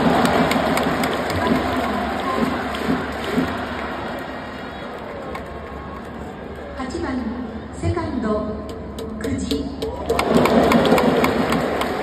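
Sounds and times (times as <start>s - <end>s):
crowd clapping and cheering: 0.0s - 6.8s, 8.7s - 12.0s.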